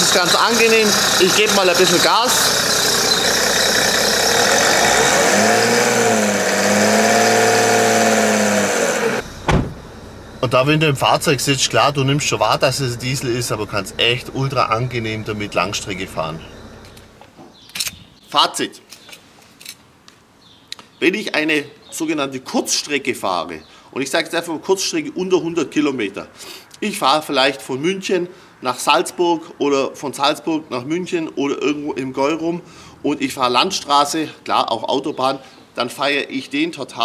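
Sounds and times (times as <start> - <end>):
diesel engine knocking and revving: 0.0 - 17.2.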